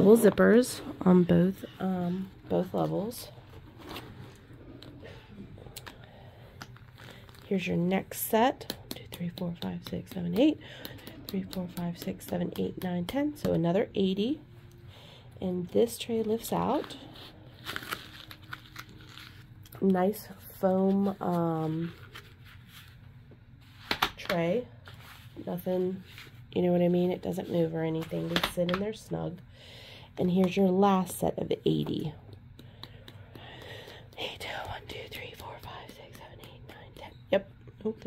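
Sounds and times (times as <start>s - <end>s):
woman speaking: 0.0s - 3.4s, 7.4s - 14.5s, 15.4s - 17.1s, 19.7s - 22.0s, 24.2s - 24.8s, 25.4s - 29.4s, 30.2s - 32.3s, 34.2s - 38.0s
woman whispering: 34.1s - 38.0s.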